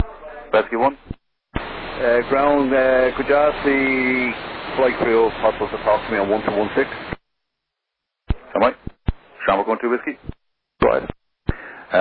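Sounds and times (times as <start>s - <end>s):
radio transmission click: 1.0s - 1.9s, 6.4s - 7.2s, 8.3s - 9.3s, 9.9s - 11.6s
voice over radio: 1.6s - 7.2s, 8.3s - 12.0s.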